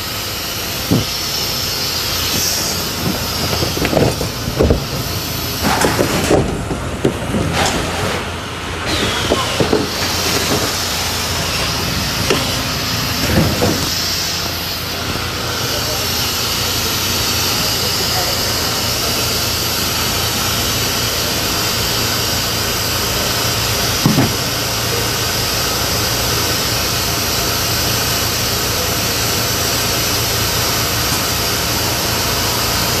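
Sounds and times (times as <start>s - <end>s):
packaging machines humming: 0.0s - 33.0s
knocks of cartons: 0.9s - 1.2s, 2.3s - 8.2s, 8.9s - 10.8s, 13.2s - 14.0s, 24.0s - 24.5s.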